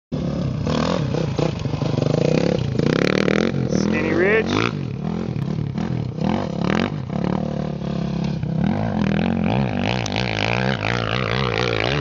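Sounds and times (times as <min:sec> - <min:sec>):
dirt bike engine revving: 0:00.1 - 0:12.0.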